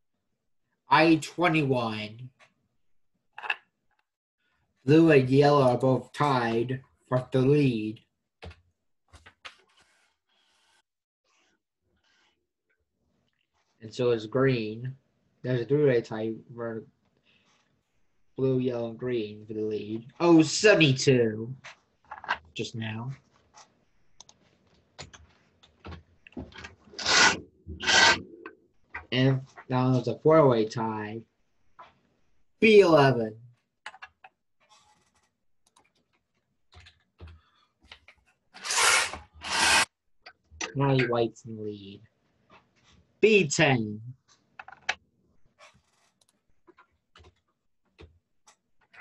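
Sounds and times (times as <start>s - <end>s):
man's voice: 0.9s - 2.2s, 4.9s - 8.0s, 13.9s - 14.9s, 15.5s - 16.8s, 18.4s - 21.6s, 29.2s - 31.2s, 32.6s - 33.4s, 40.6s - 42.0s, 43.2s - 44.1s
faint clicks and taps: 8.4s - 9.9s, 21.6s - 26.9s, 33.5s - 38.4s, 44.2s - 49.0s
rubbing or scraping: 9.2s - 12.4s, 26.3s - 29.8s, 34.6s - 35.4s, 38.6s - 39.9s.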